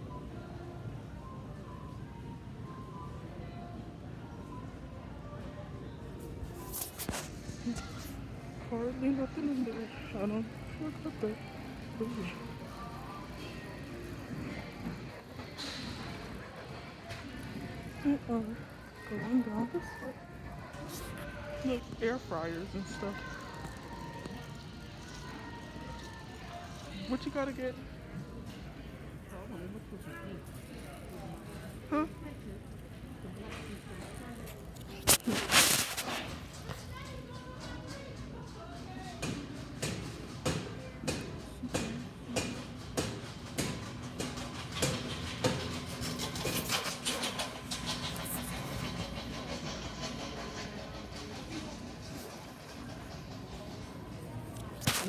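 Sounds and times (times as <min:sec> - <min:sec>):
shop floor hum: 0:00.0 - 0:55.0
rattling rolling clatter: 0:42.8 - 0:54.8.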